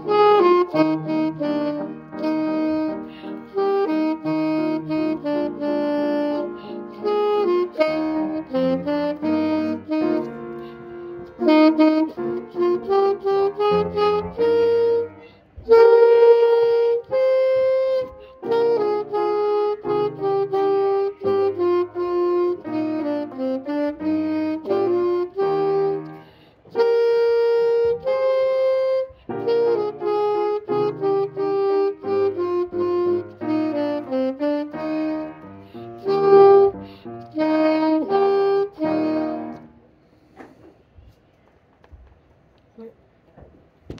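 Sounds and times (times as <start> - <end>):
alto saxophone melody: 0.0 - 39.9.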